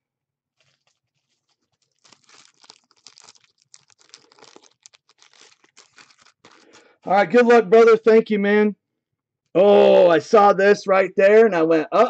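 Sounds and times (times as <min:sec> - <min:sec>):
plastic sleeves crinkling: 0:00.4 - 0:07.1.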